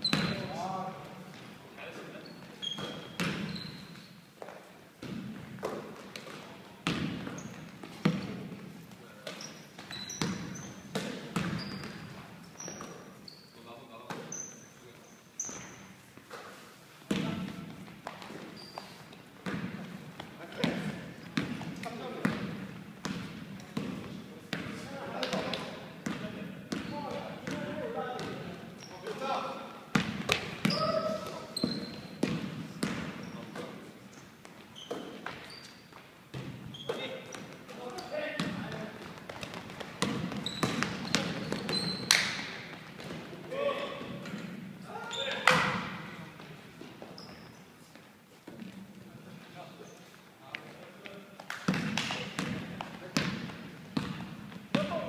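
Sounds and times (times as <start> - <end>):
sneakers squeaking: 0.0 - 48.9, 49.7 - 50.2, 51.7 - 55.0
basketball bouncing on wooden floor: 2.7 - 3.6, 5.0 - 8.4, 9.8 - 12.0, 19.4 - 24.7, 29.9 - 33.7, 36.3 - 37.5, 38.4 - 43.3, 51.7 - 55.0.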